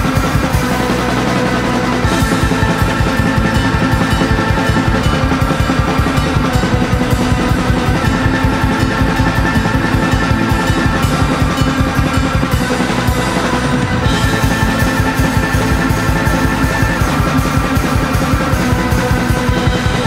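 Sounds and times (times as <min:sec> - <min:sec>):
fast drum kit pattern: 0:00.0 - 0:20.0
rock band playing: 0:00.0 - 0:20.0.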